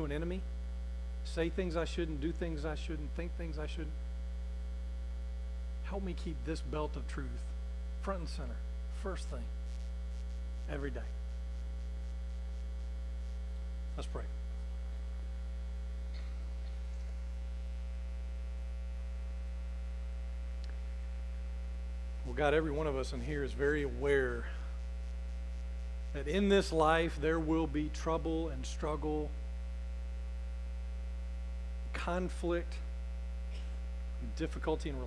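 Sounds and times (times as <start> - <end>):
man speaking: 0.0 - 0.4, 1.3 - 4.0, 5.8 - 9.5, 10.6 - 11.2, 13.9 - 14.4, 22.2 - 24.7, 26.2 - 29.3, 32.0 - 32.9, 34.2 - 35.0
electrical mains hum: 0.0 - 35.0.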